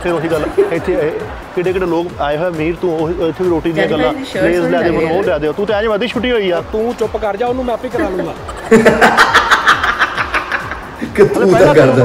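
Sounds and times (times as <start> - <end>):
man laughing heartily: 8.3 - 11.1.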